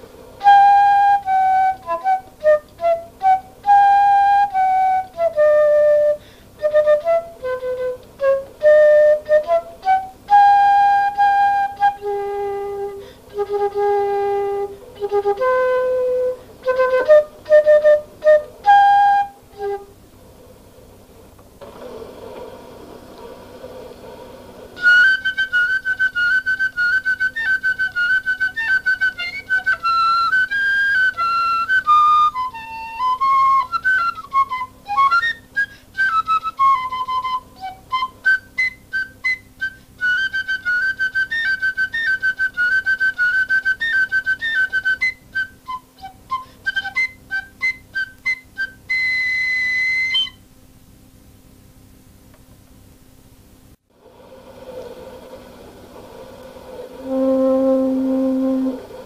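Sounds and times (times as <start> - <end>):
flute playing high notes: 0.4 - 20.0, 24.8 - 50.4, 56.5 - 59.0
breathy rush of air: 6.2 - 6.6, 13.0 - 13.4, 21.6 - 24.8, 53.9 - 59.0.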